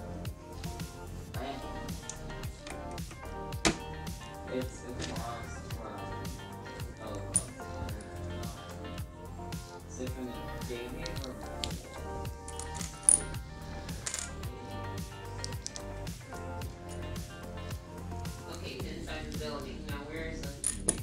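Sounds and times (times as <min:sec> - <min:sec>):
background music with beat: 0:00.0 - 0:21.0.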